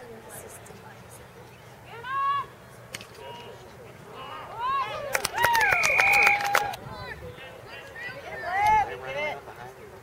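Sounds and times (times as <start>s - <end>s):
faint open-air game noise: 0.0s - 10.0s.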